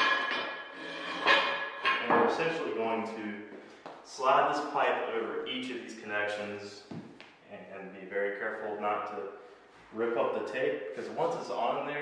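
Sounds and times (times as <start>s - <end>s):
sharp metallic clanks: 0.0s - 2.6s
steel pipes knocking and clinking: 0.0s - 2.6s.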